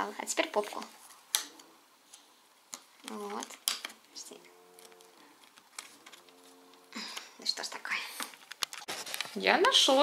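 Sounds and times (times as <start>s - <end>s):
wooden puzzle piece clicking: 1.3s - 4.0s.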